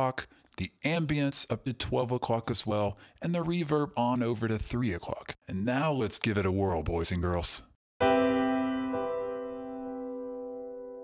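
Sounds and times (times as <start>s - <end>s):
piano chord with reverb: 8.0s - 11.0s.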